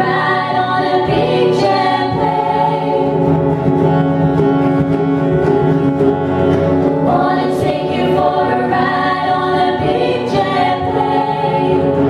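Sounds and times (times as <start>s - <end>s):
women singing in harmony: 0.0s - 3.4s, 7.0s - 12.0s
acoustic guitar: 0.0s - 12.0s.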